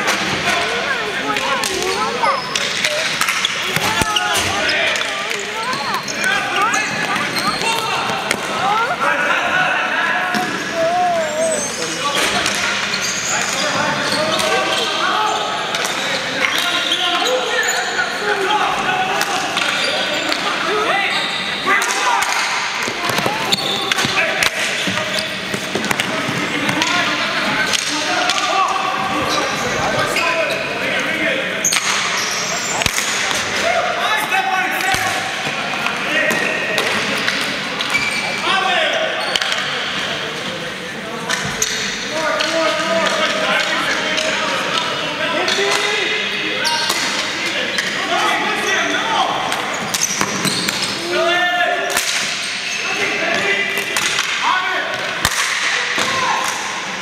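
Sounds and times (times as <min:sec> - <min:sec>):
hockey sticks clacking: 0:00.0 - 0:08.9, 0:15.7 - 0:17.2, 0:19.2 - 0:20.6, 0:21.8 - 0:28.6, 0:41.3 - 0:46.0, 0:51.9 - 0:52.5, 0:53.3 - 0:56.7
ball striking floor and boards: 0:01.3 - 0:06.0, 0:06.6 - 0:08.6
people shouting: 0:01.4 - 0:12.0.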